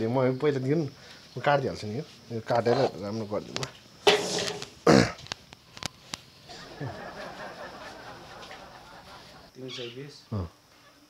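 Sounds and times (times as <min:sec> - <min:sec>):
man making short vocal sounds: 0:10.3 - 0:10.5.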